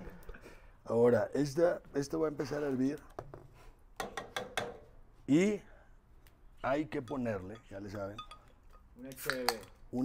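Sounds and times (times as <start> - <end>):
cookware and utensils clicking: 7.0 - 9.8.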